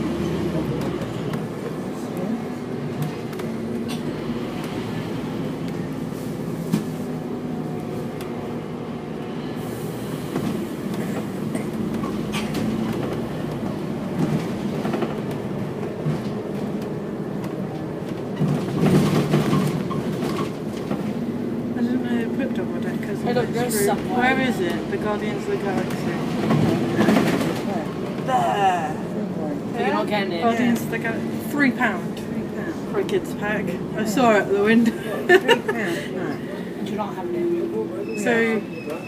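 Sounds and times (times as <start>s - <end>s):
bus engine drone: 0.0s - 39.0s
road rumble: 0.0s - 39.0s.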